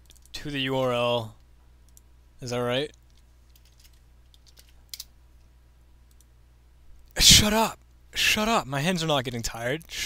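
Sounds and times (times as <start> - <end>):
low steady hum: 0.0 - 10.0
keyboard keystrokes and clicks: 2.9 - 5.1.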